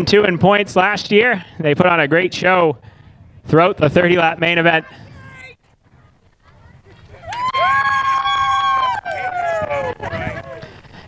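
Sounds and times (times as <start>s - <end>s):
people cheering with whoops: 7.1s - 10.6s.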